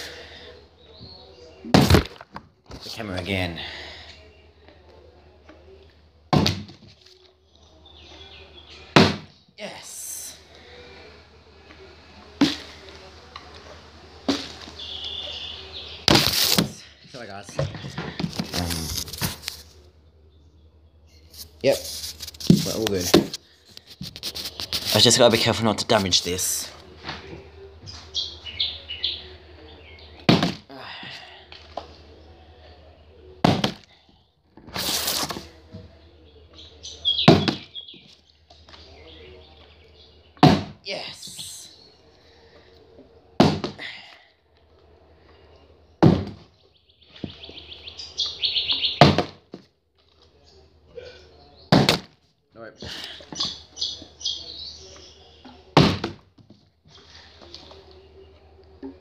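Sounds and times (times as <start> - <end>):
bottle hitting camera crash: 1.7 - 2.3
plastic bottle landing thuds: 1.7 - 2.5, 6.3 - 6.9, 8.9 - 9.3, 16.1 - 16.8, 30.3 - 30.7, 33.4 - 33.9, 37.3 - 37.7, 40.4 - 40.8, 43.4 - 43.9, 46.0 - 46.5, 49.0 - 49.6, 51.7 - 52.2, 55.7 - 56.6
water bottle landing with a thunk: 6.3 - 6.8, 40.4 - 40.8, 43.4 - 43.8, 46.0 - 46.5, 55.8 - 56.2.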